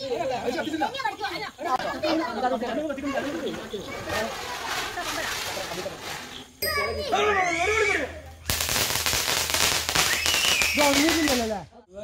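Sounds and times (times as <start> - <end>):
firework crackling: 0.2 - 11.7.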